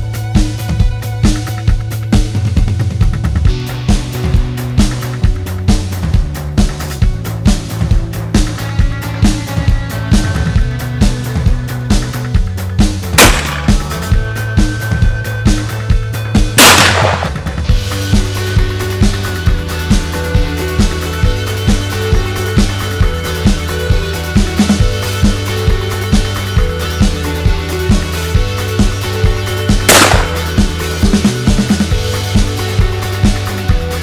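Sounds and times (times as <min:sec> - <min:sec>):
rock music with drum beat: 0:00.0 - 0:34.0
shotgun shots with echo: 0:13.2 - 0:14.1, 0:16.6 - 0:17.7, 0:29.9 - 0:30.7.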